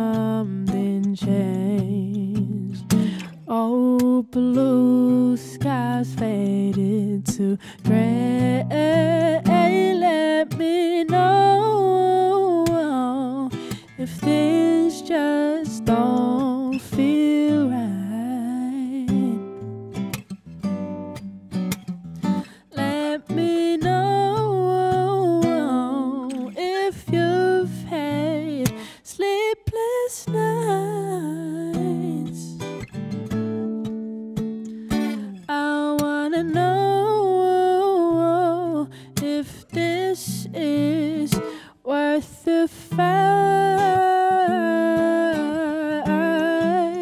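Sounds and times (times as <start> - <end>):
woman singing: 0.0 - 19.8, 22.3 - 47.0
acoustic guitar: 0.0 - 47.0.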